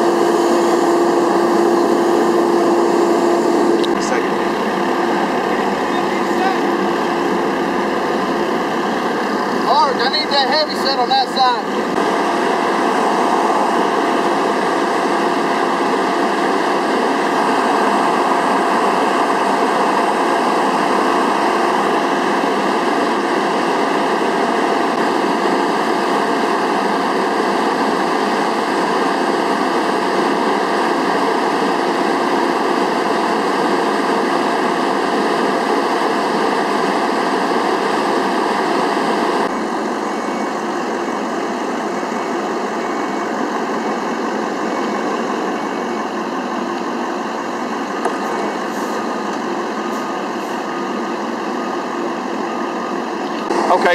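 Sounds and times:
vehicle engines idling: 0.1 - 21.8.

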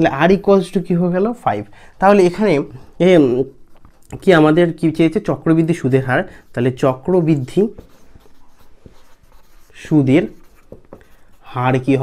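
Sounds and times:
marker pen scratching on paper: 2.0 - 12.0.

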